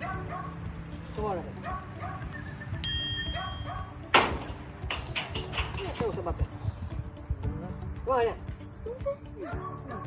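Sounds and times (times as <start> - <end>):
bell-like chime ding: 2.8 - 4.0.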